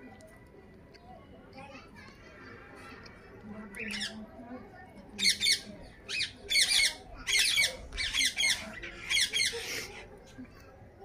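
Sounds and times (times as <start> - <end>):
parakeets chattering: 3.7 - 10.3.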